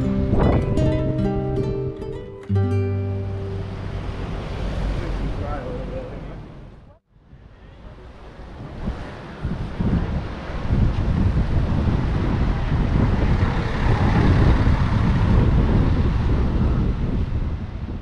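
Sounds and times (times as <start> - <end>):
wind buffeting microphone: 0.0 - 2.2, 3.3 - 18.0.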